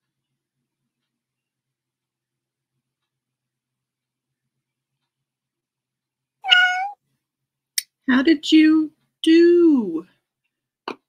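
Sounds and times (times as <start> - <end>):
cat meow: 6.4 - 7.0.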